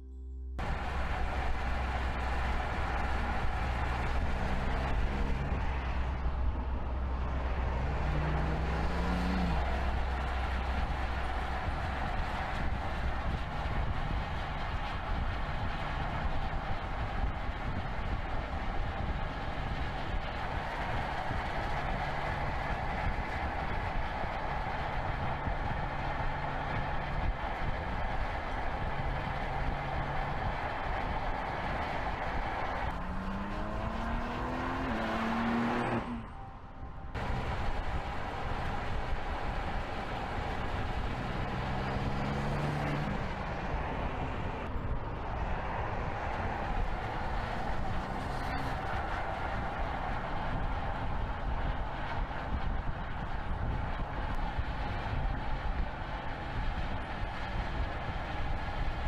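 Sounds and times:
car engine accelerating: 0.0s - 59.0s
road and tyre noise: 0.0s - 59.0s.

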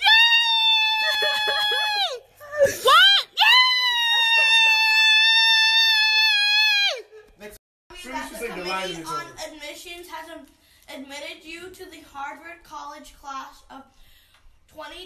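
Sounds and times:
girl screaming for joy: 0.0s - 7.1s.

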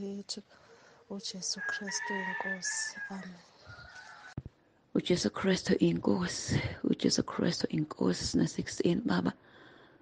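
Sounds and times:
person's voice: 0.0s - 4.1s, 5.0s - 9.4s.

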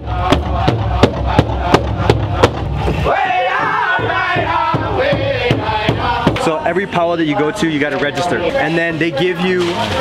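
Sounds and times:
large drum beating: 0.0s - 6.6s.

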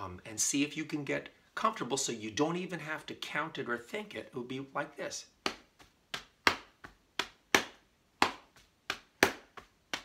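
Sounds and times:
hand slapping thigh and chest: 5.3s - 10.0s.

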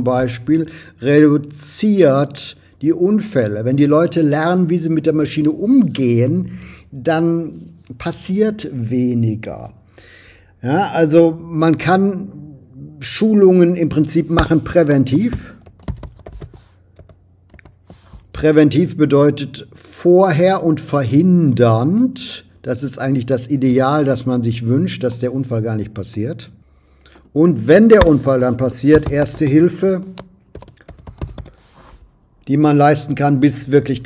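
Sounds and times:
computer keyboard typing: 14.4s - 18.0s, 28.9s - 31.6s.

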